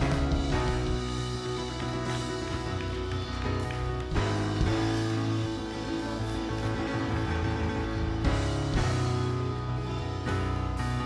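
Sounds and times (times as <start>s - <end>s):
church band and choir: 0.0s - 11.0s.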